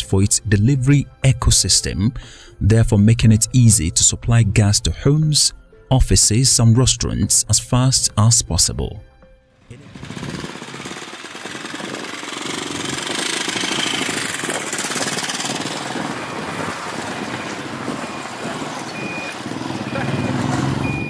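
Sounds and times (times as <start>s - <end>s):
small motorcycle engines passing: 9.7s - 21.0s.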